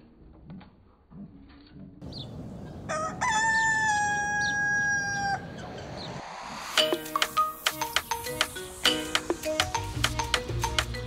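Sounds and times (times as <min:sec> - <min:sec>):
chickens calling: 0:02.0 - 0:06.3
rooster crowing: 0:02.8 - 0:05.7.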